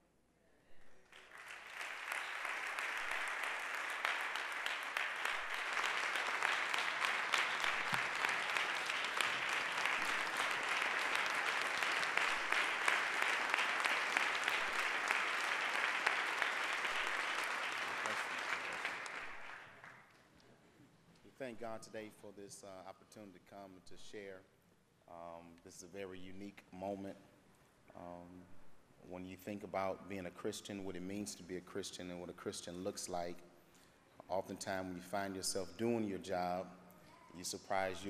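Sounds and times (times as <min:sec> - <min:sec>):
congregation applauding: 0:01.0 - 0:20.2.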